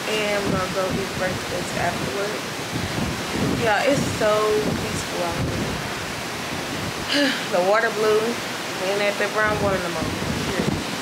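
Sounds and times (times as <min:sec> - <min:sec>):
woman speaking: 0:00.0 - 0:02.5, 0:03.6 - 0:05.8, 0:07.1 - 0:10.8
wind and sea rushing: 0:00.0 - 0:11.0.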